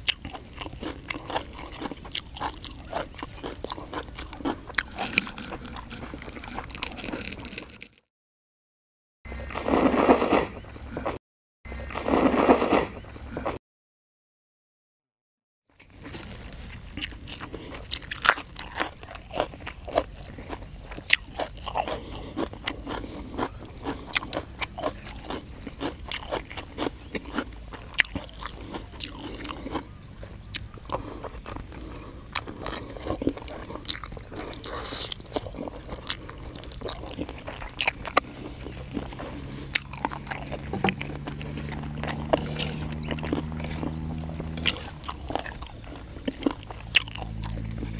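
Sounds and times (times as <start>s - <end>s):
man chewing crunchy food: 0.0s - 8.0s, 9.3s - 13.6s, 15.8s - 47.9s.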